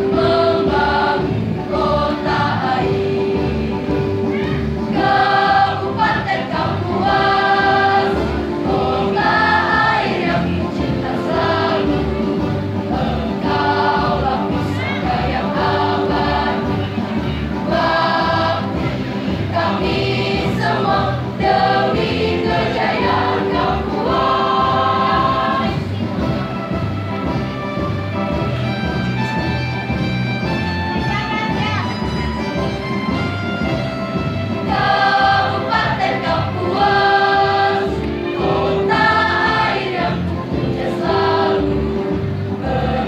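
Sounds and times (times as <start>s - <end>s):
choir singing in unison: 0.0s - 26.0s, 34.6s - 43.0s
instrumental accompaniment: 0.0s - 43.0s.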